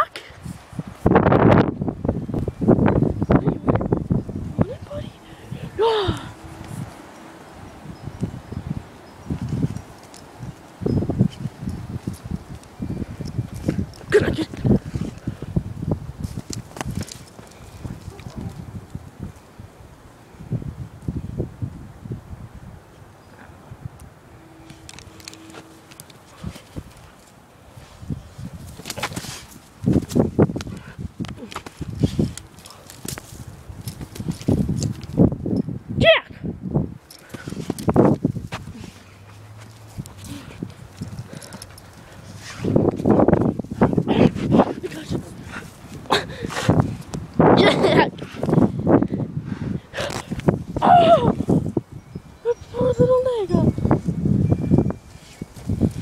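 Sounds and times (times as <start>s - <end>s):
dog thuds and scuffs on dirt: 28.6s - 30.8s.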